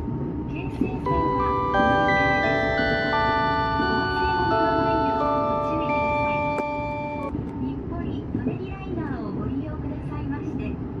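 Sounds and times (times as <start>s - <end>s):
chiming tune: 1.1s - 7.3s.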